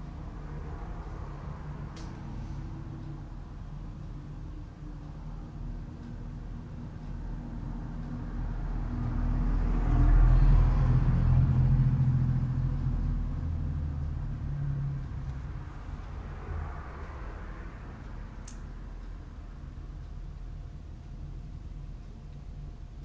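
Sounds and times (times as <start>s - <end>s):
low rumble: 0.0s - 23.0s.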